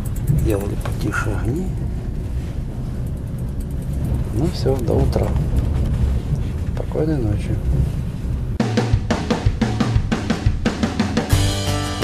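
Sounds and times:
train wheels rumbling on rails: 0.0s - 10.8s.

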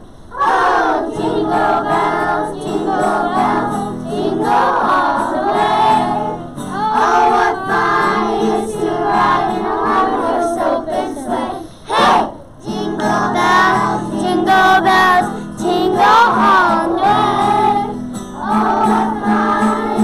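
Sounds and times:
children singing in chorus: 0.3s - 20.0s.

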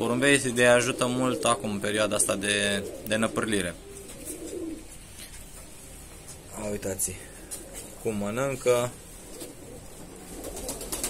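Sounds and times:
pigeons cooing: 0.0s - 6.1s, 7.0s - 11.0s
soft aviary background: 0.0s - 11.0s.

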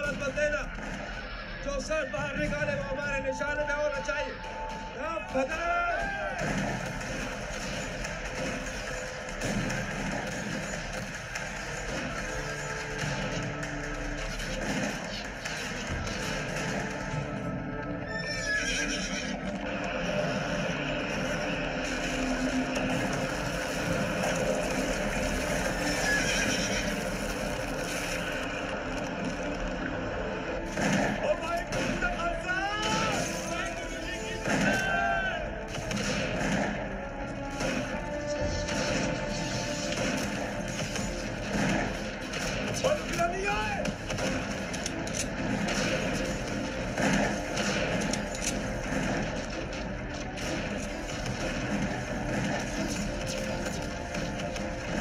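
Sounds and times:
film background music: 0.0s - 55.0s
horses neighing: 18.0s - 19.9s, 25.8s - 27.2s.

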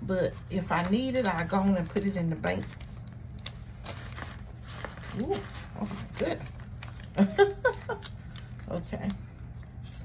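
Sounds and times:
paper bills rustling: 0.2s - 10.0s.

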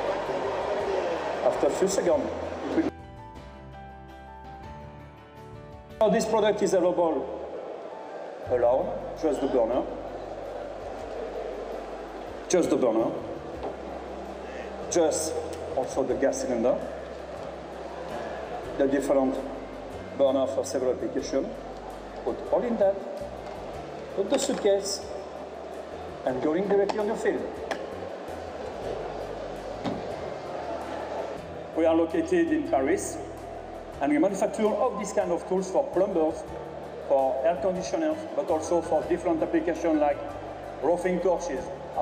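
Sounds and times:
background music: 0.0s - 42.0s
large hall background noise: 0.0s - 42.0s.

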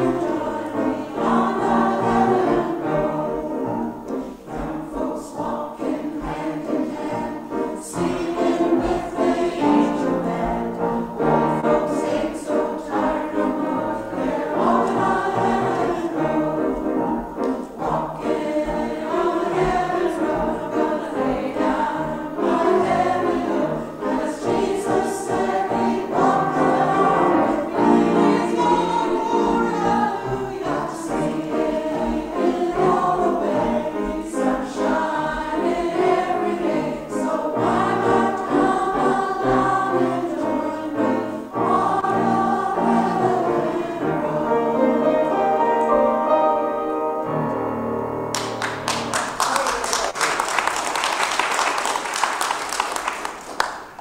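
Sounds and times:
choir singing: 0.0s - 48.0s
piano accompaniment: 0.0s - 49.4s.

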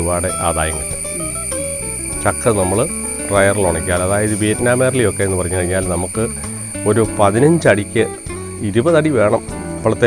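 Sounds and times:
man speaking: 0.0s - 1.4s, 2.2s - 10.0s
crickets droning: 0.0s - 10.0s.

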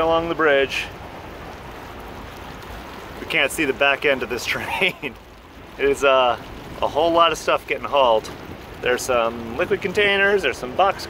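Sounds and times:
water washing around sailboat: 0.0s - 11.0s
wind: 0.0s - 11.0s.

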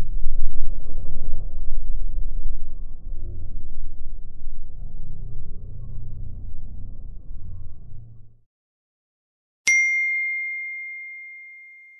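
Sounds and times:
bright bell-like ding: 9.7s - 11.9s.

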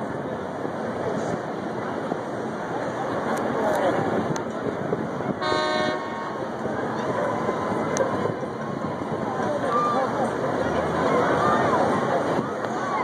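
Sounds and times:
outdoor background noise: 0.0s - 13.0s
horn toot: 5.4s - 6.4s.

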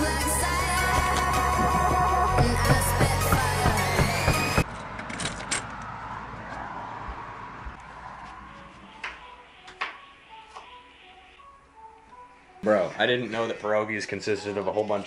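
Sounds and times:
electronic music with steady beat: 0.0s - 4.6s.

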